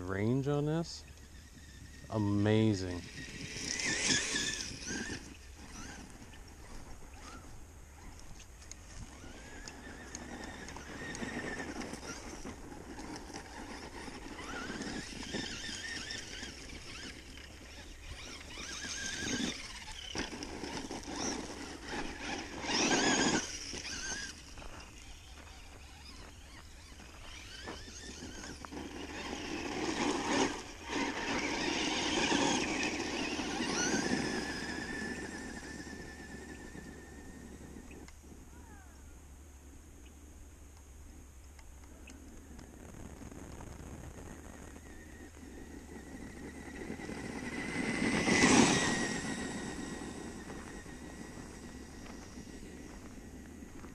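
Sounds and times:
electric motor whining: 0:01.0 - 0:38.6, 0:42.6 - 0:53.9.

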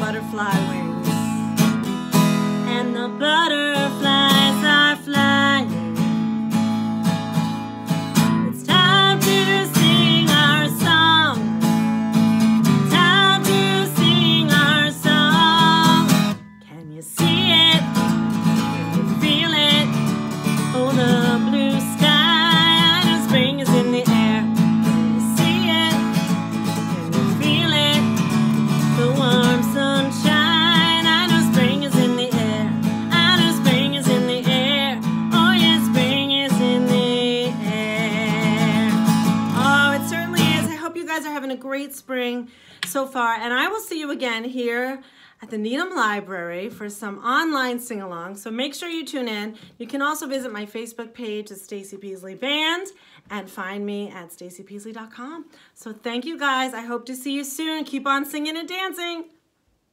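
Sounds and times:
woman singing: 0:00.0 - 0:06.4, 0:08.2 - 0:51.2
acoustic guitar strumming: 0:00.0 - 0:40.8.

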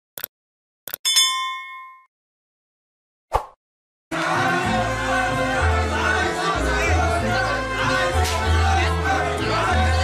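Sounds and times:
bright bell ding: 0:01.0 - 0:02.1.

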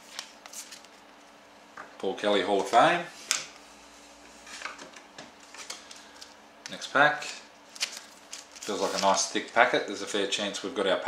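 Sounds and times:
cards and foil pack rustling: 0:05.5 - 0:06.4, 0:07.2 - 0:09.8.

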